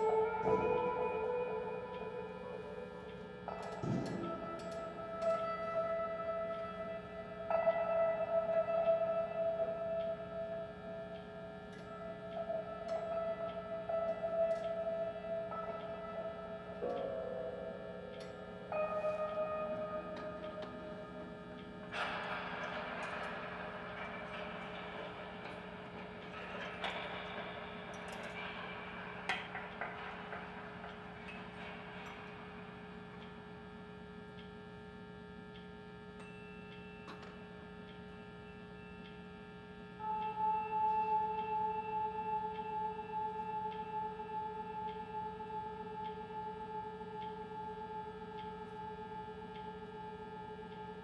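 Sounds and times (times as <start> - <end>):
experimental drone music: 0.0 - 34.4, 39.9 - 51.0
steady low hum: 0.0 - 51.0.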